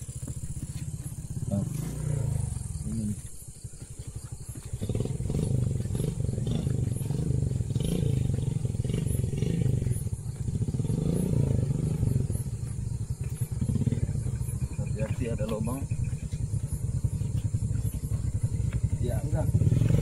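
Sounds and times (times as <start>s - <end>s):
motorcycle engine labouring: 0.0s - 20.0s.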